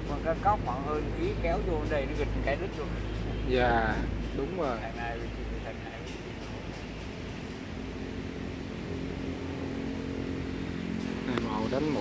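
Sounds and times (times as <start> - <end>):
motor engine humming: 0.0 - 12.0.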